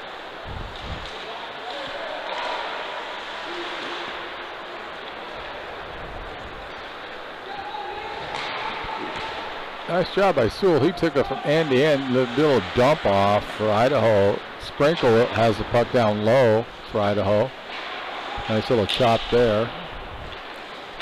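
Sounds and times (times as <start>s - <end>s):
hockey sticks and puck clicking: 0.7s - 5.6s, 8.0s - 9.6s, 17.6s - 21.0s
skates hissing on ice: 2.7s - 4.3s
faint distant shouts: 7.4s - 12.9s.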